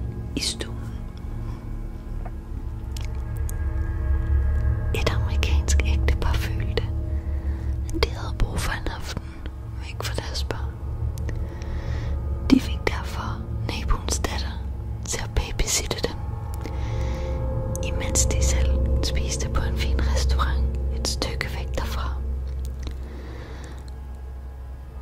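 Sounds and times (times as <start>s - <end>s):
low droning music: 0.0s - 25.0s
person whispering: 0.3s - 1.0s, 5.0s - 6.9s, 7.9s - 10.8s, 12.5s - 16.2s, 17.8s - 22.3s.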